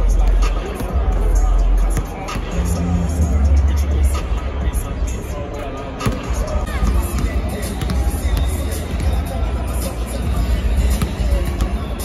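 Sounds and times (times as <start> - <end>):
bass-heavy arena music: 0.0 - 12.0
crowd chatter: 0.0 - 12.0.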